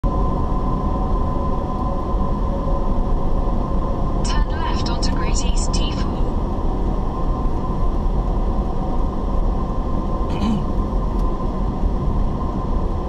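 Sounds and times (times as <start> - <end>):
car road and engine rumble: 0.0 - 13.0
constant whine: 0.0 - 13.0.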